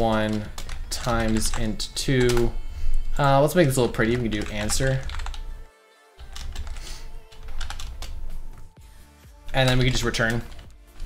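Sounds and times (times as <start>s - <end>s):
computer keyboard typing: 0.0s - 2.6s, 3.2s - 5.5s, 6.2s - 8.8s, 9.5s - 11.0s.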